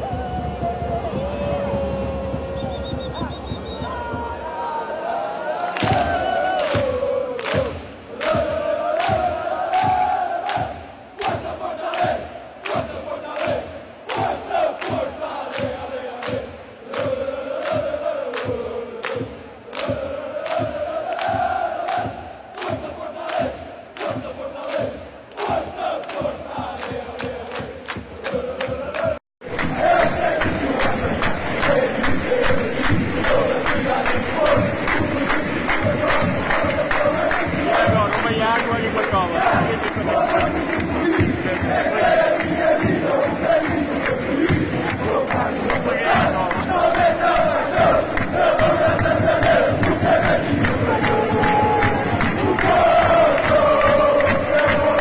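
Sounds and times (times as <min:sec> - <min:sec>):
stadium crowd singing a chant: 0:00.0 - 0:55.0.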